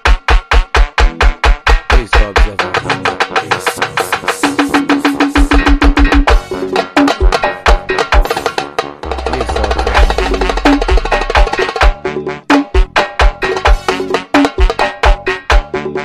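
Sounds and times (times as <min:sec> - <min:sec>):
fast percussion hits: 0:00.0 - 0:12.0
deep bass: 0:09.0 - 0:11.6.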